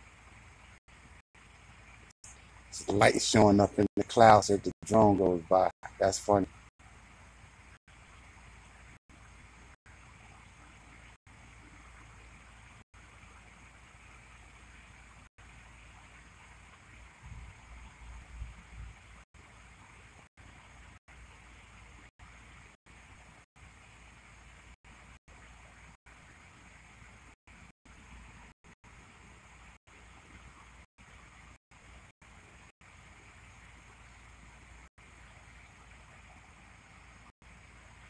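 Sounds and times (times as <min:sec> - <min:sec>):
faint background hiss: 0:00.0 - 0:38.0.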